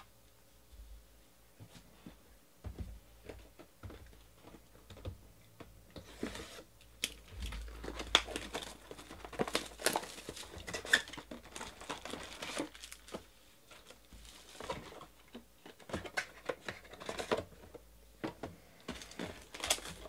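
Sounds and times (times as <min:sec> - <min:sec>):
shrink wrap crinkling and tearing: 0:07.0 - 0:15.1, 0:19.0 - 0:20.0.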